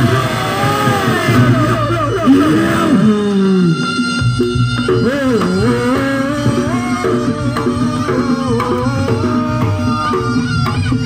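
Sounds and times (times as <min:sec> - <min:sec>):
reed melody sliding in pitch: 0:00.0 - 0:11.0.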